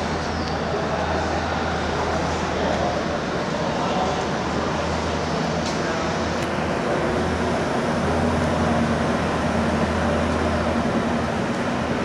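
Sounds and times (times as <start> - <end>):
constant low hum: 0.0 - 12.0
low rumble and hiss: 0.0 - 12.0.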